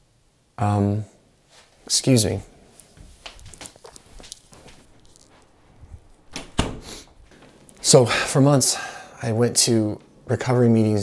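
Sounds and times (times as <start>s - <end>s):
clothing rustling against microphone: 1.4s - 8.1s.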